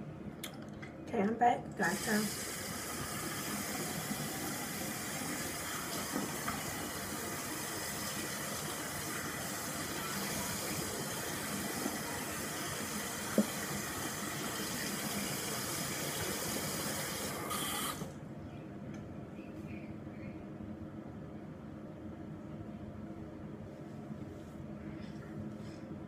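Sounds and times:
tap water running into sink: 1.8 - 18.1.

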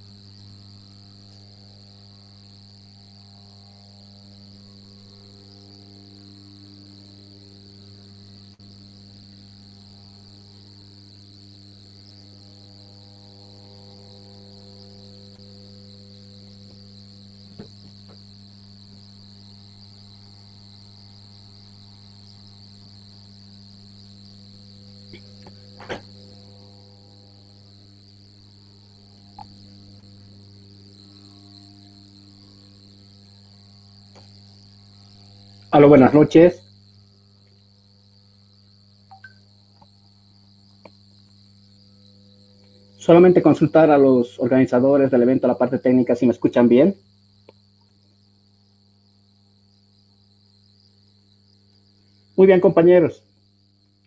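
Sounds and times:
electrical hum: 0.0 - 53.3
high-pitched whine: 42.2 - 47.0.

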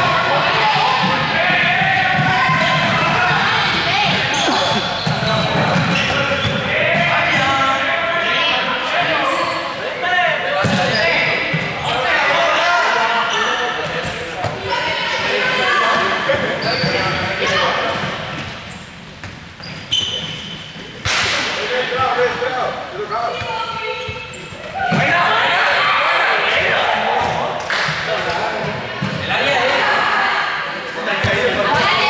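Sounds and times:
players calling out: 0.0 - 19.0
balls bouncing on court floor: 0.8 - 7.7, 10.5 - 11.8, 16.3 - 22.1, 26.6 - 29.4, 31.2 - 32.0.

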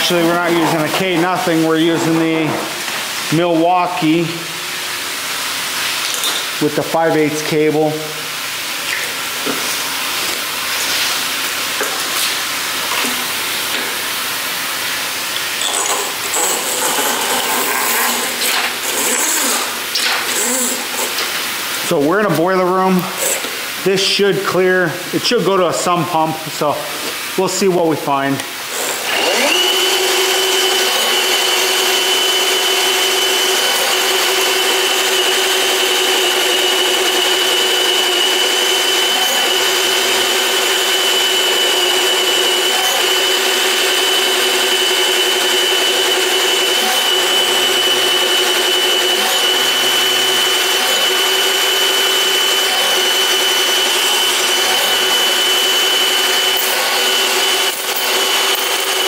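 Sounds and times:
drain machine whining: 28.7 - 59.0.

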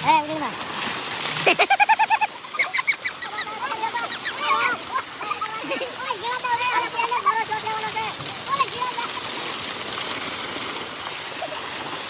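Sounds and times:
water gushing from pipe: 0.0 - 12.0
young men shouting and whooping: 2.6 - 8.2.

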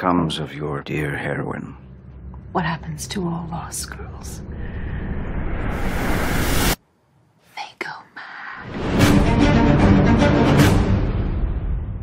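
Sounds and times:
music: 0.0 - 5.0, 8.6 - 12.0
woman whispering: 7.4 - 8.6.

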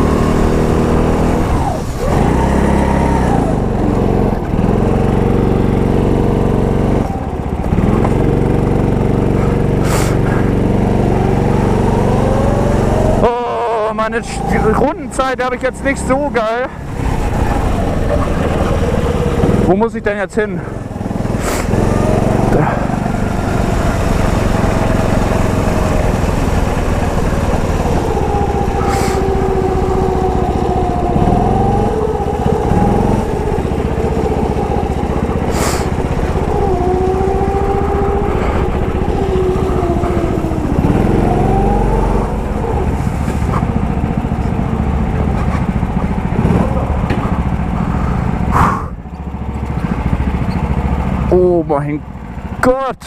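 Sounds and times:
go-kart engine revving: 0.0 - 53.0.

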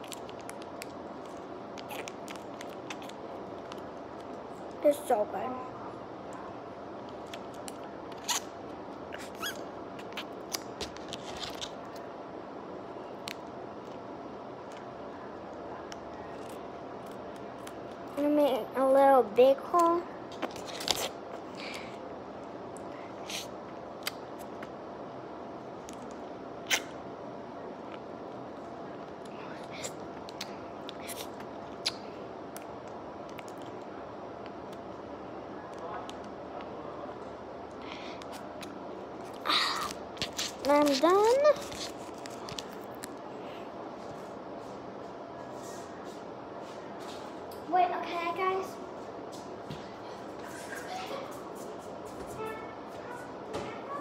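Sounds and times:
room hum: 0.0 - 54.0.

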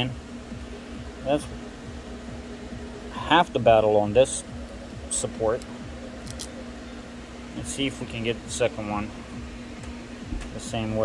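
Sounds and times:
low fan hum: 0.0 - 11.0.

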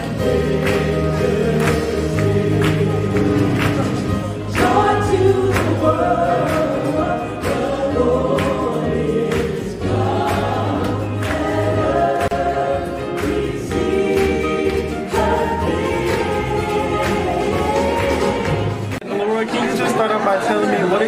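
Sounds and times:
live band playing: 0.0 - 8.3
mixed choir singing in harmony: 0.0 - 21.0.

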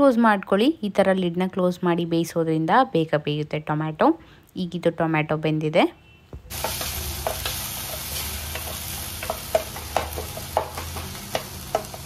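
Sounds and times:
masala sizzling in a pot: 6.5 - 12.0.

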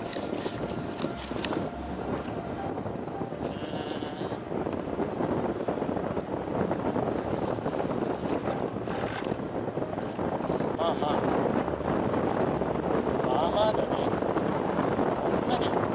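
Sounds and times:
road noise: 0.0 - 15.9
wind rushing over microphone: 0.0 - 15.9.

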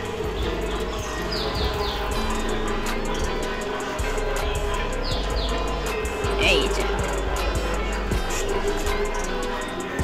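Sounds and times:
bird chirping: 0.0 - 7.2
background music: 0.0 - 10.0.

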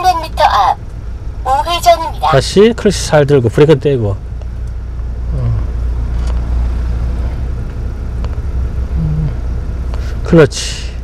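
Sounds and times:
truck engine rumble: 0.0 - 11.0.

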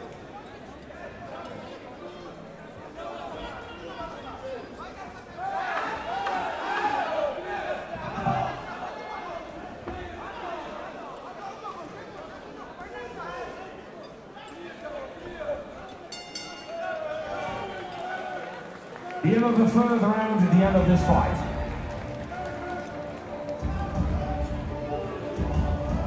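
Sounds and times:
crowd shouting: 5.3 - 11.1, 16.6 - 26.0.

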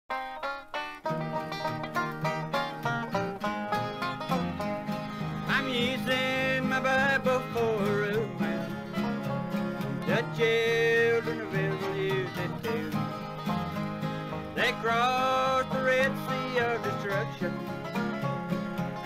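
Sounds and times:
banjo picking: 0.1 - 19.0
guitar rhythm: 0.1 - 19.0.

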